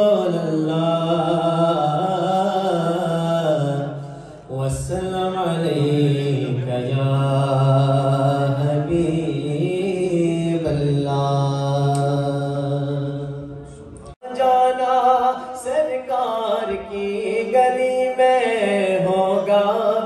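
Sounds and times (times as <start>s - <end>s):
man chanting over a pa: 0.0s - 13.6s.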